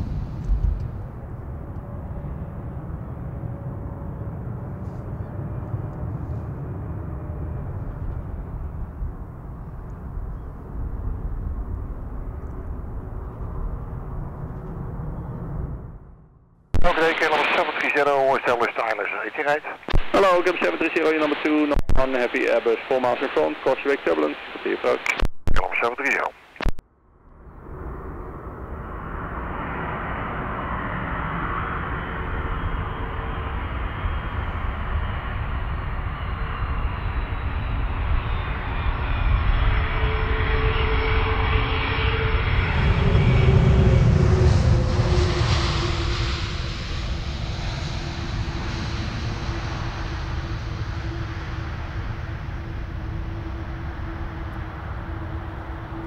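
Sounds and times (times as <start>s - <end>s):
jet airliner landing: 0.0s - 16.2s, 16.8s - 26.7s, 27.4s - 56.0s.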